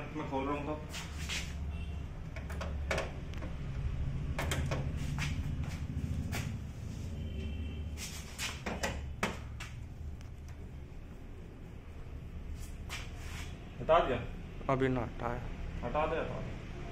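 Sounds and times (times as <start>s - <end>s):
steady low hum: 0.0s - 15.9s.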